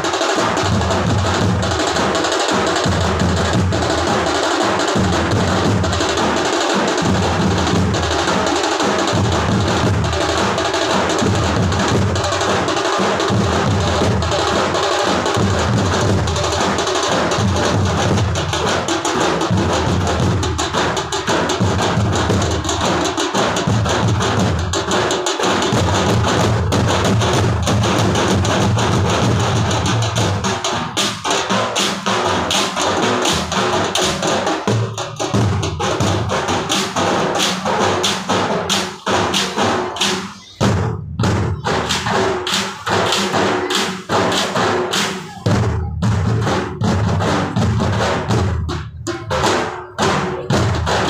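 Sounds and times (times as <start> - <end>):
drums playing fast beat: 0.0 - 51.0.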